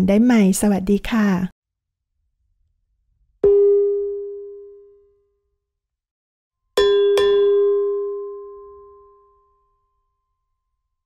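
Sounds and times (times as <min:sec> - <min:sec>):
bell-like chime: 0:06.8 - 0:11.0.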